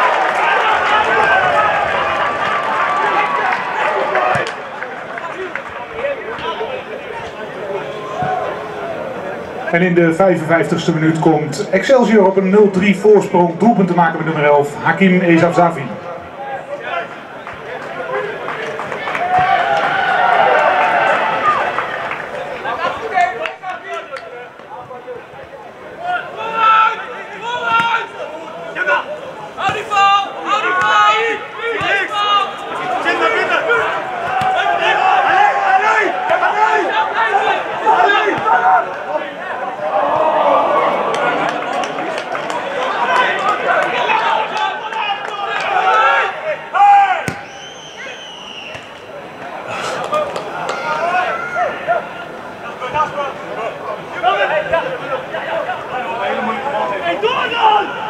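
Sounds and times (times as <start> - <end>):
players shouting: 0.0 - 58.0
spectators talking: 0.0 - 58.0.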